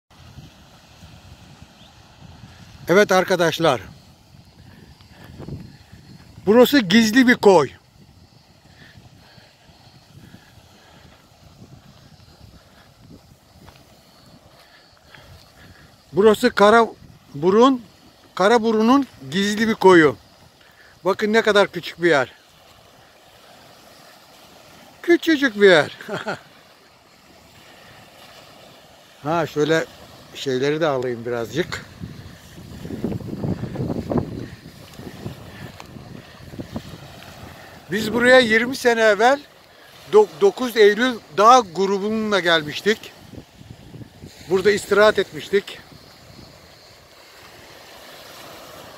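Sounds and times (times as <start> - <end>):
wind rumbling on microphone: 0.1 - 21.1, 25.9 - 48.9
waves washing onto pebbles: 0.1 - 48.9.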